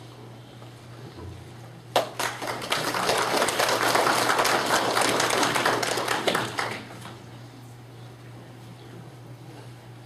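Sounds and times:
crowd applauding: 2.0 - 7.1.

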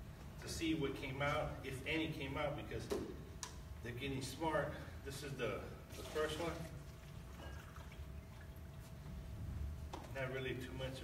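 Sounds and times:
liquid poured into a cup: 5.9 - 8.8.

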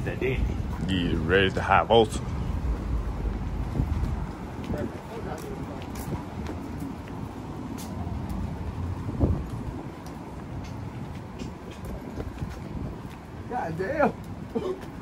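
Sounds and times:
footsteps on pavement: 0.0 - 15.0
traffic rumble: 0.0 - 15.0.

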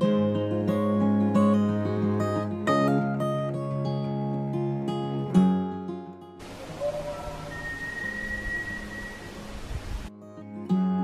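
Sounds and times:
acoustic guitar music: 0.0 - 11.0
thin high tone: 6.4 - 9.7
outdoor background hiss: 6.4 - 10.1.

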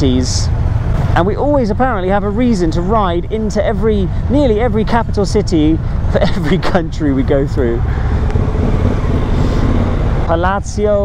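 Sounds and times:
motorcycle engine: 0.0 - 10.6
surrounding traffic: 0.0 - 11.0.

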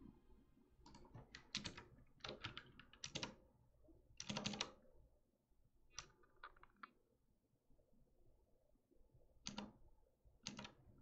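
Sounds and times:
keyboard typing: 0.9 - 3.4.

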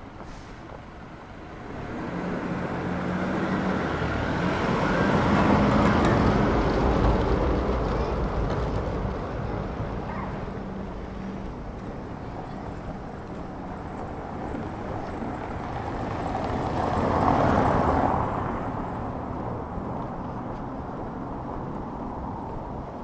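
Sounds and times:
road train engine humming: 0.0 - 23.0.

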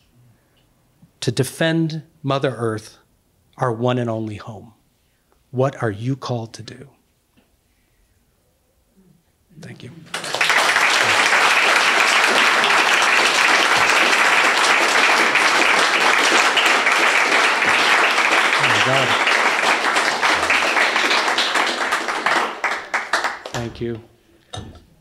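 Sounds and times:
audience applauding: 9.8 - 23.9.

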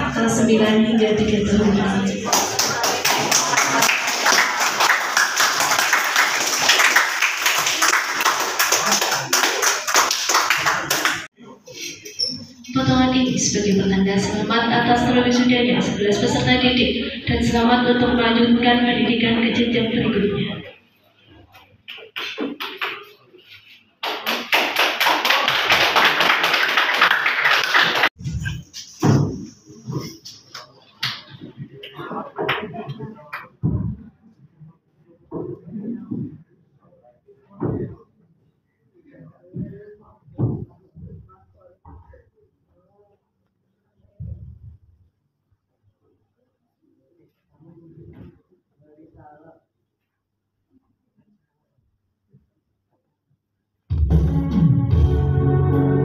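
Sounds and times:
audience applauding: 2.3 - 11.3, 24.0 - 28.2.

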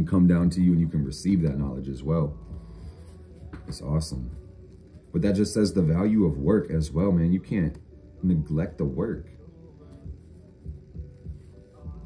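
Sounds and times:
soft ambient background music: 0.0 - 12.0.

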